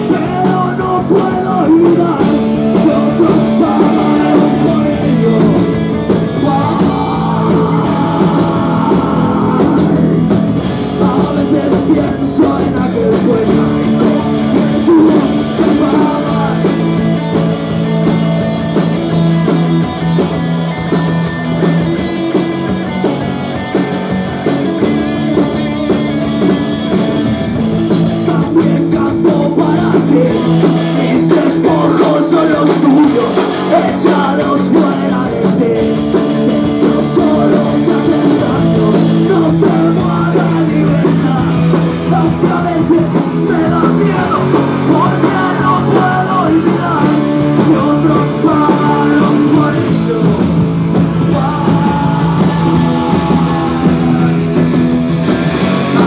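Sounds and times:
man singing into a microphone: 0.0s - 17.6s, 28.1s - 56.0s
rock band playing loudly: 0.0s - 56.0s.

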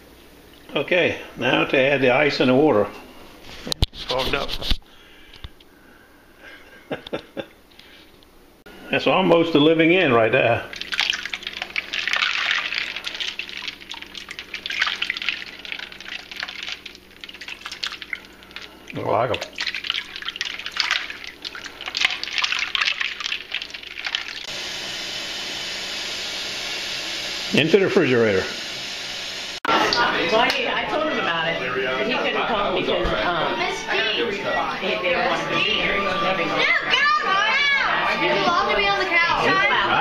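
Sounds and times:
shrimp and ice sloshing in water: 10.7s - 24.5s.

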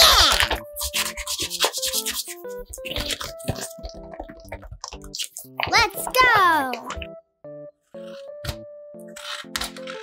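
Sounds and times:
hands rubbing paper: 0.2s - 3.8s.

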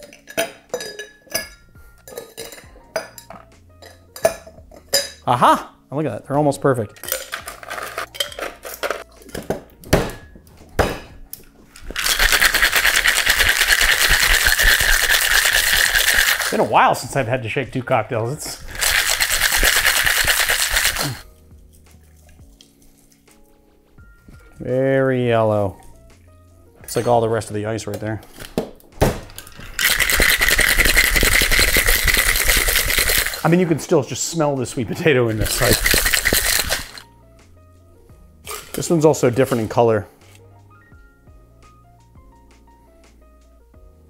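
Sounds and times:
ice and tongs clinking against glass: 0.0s - 5.2s, 6.9s - 9.1s, 11.8s - 16.6s, 18.7s - 21.2s, 29.3s - 33.5s, 35.3s - 37.1s, 38.4s - 39.8s
faint background music: 0.0s - 44.0s.

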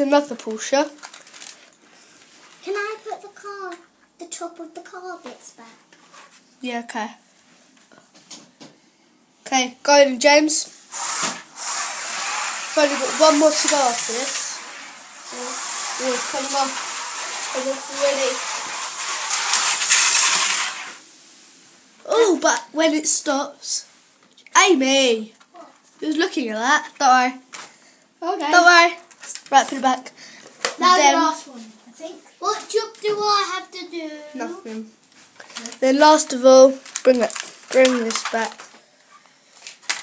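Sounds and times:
child speaking: 0.0s - 1.0s, 2.6s - 5.8s, 9.5s - 10.7s, 12.7s - 14.6s, 15.3s - 18.6s, 22.0s - 23.9s, 24.5s - 27.4s, 28.2s - 30.1s, 30.7s - 38.6s.

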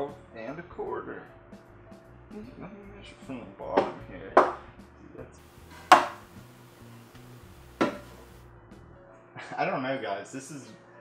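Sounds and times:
faint background music: 0.0s - 11.0s
knocks on wooden shelf: 5.8s - 6.4s, 7.7s - 8.3s.

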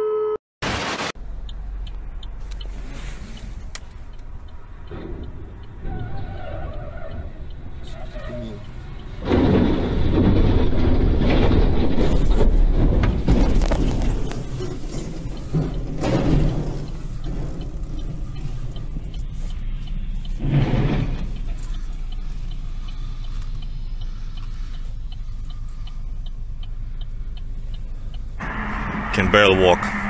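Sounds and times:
car road noise rumble: 0.7s - 30.0s
light regular ticking: 1.2s - 10.6s, 13.7s - 28.4s
rushing noise: 28.4s - 30.0s.

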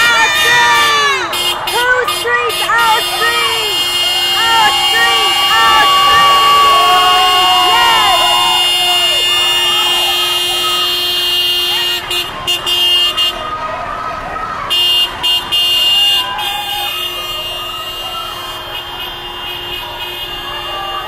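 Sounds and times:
car horn honking: 0.0s - 13.6s, 14.7s - 21.0s
crowd of marchers voices: 0.0s - 21.0s.

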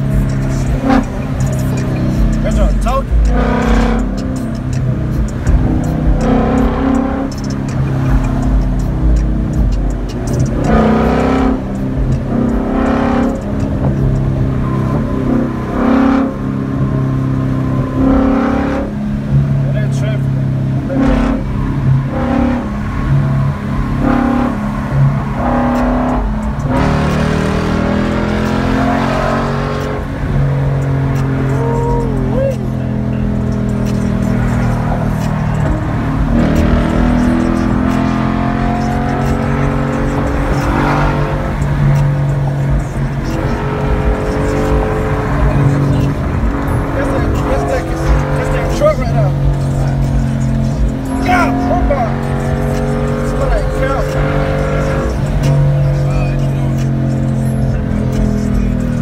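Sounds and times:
car engine drone from cabin: 0.0s - 59.0s
road noise: 0.0s - 59.0s.

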